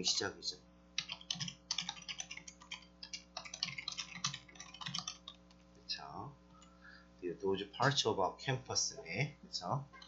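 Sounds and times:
typing on computer keyboard: 1.0 - 5.4.

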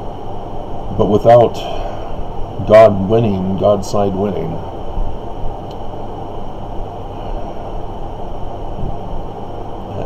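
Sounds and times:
constant low hum: 0.0 - 10.0
low rumbling background noise: 0.0 - 10.0.

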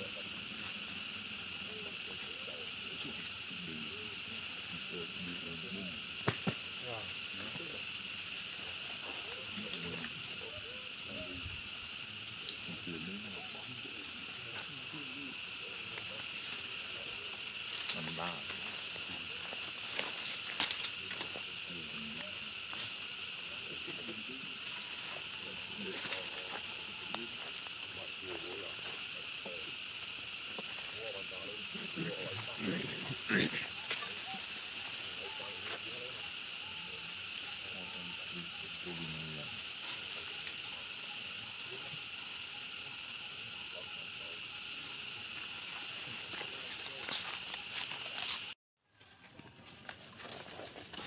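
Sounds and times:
people talking quietly: 0.0 - 48.5
high insect drone: 0.0 - 51.0.

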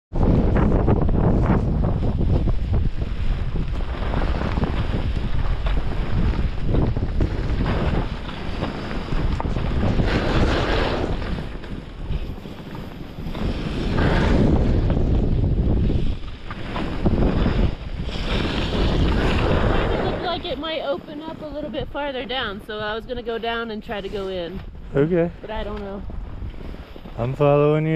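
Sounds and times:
wind rushing over microphone: 0.1 - 27.9
skis hissing on snow: 9.8 - 11.5, 12.1 - 15.2, 15.8 - 20.3.

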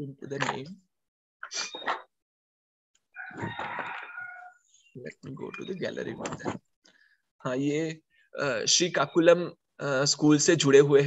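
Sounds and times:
rooster crowing: 3.2 - 4.6.

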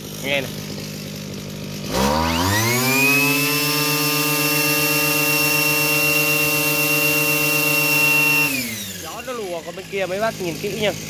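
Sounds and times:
brushcutter engine revving: 0.0 - 11.0.

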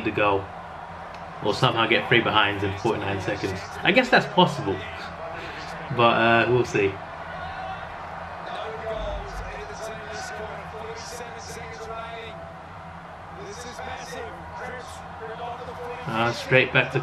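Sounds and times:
commentators talking: 0.0 - 0.5, 1.4 - 7.0, 8.4 - 12.4, 13.3 - 17.0.

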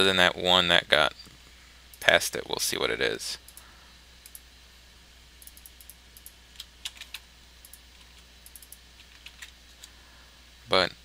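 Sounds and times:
steady low hum: 0.0 - 11.0
keyboard and mouse clicks: 5.4 - 9.5.

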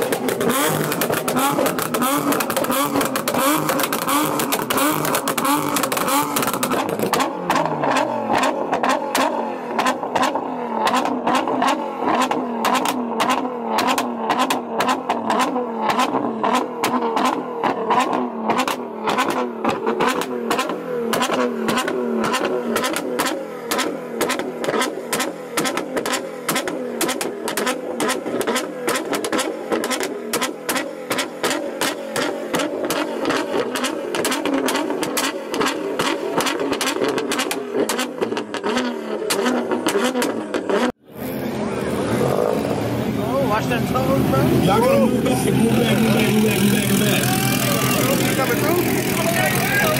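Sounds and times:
exhaust popping and banging: 0.0 - 41.0
car engine at high rev: 0.0 - 49.9.

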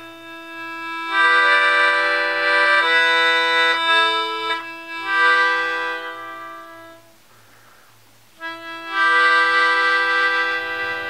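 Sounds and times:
melodica chord: 0.0 - 7.2, 8.4 - 11.0.

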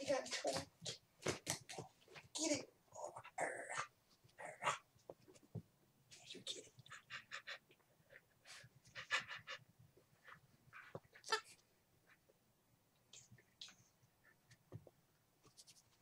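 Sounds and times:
small dog panting: 6.7 - 11.5.

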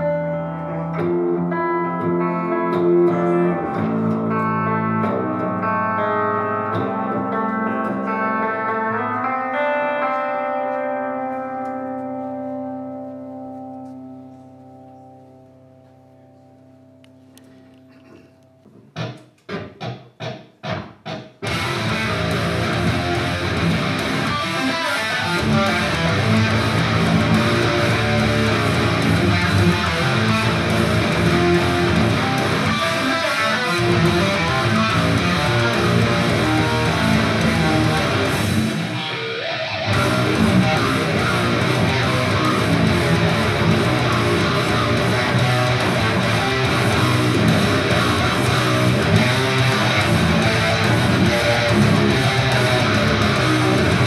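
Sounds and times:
clean electric guitar chords: 0.0 - 19.6, 21.4 - 54.0
distorted low guitar riffing: 0.0 - 54.0.

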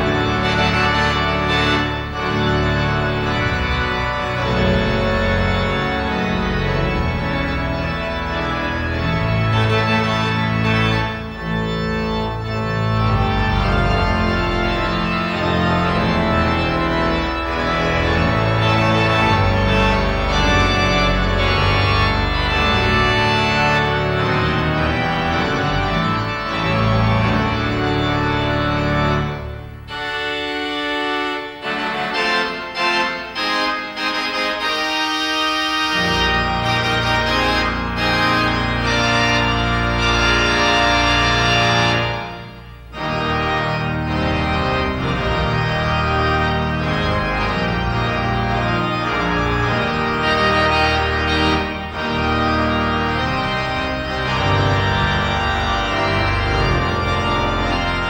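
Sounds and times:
pipe organ playing a hymn: 0.0 - 58.0.

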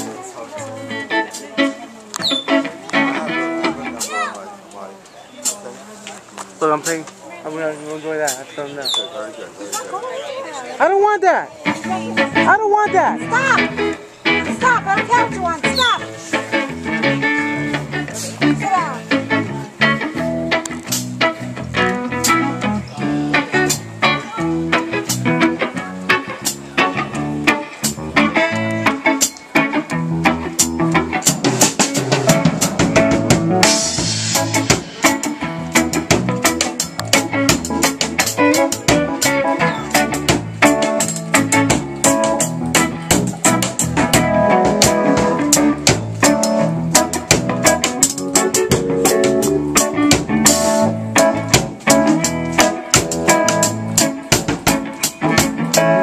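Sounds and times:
drum kit beat: 0.0 - 4.3, 11.0 - 56.0
bass guitar: 0.0 - 5.0, 10.8 - 56.0
electric guitar: 0.0 - 5.0, 11.5 - 56.0.

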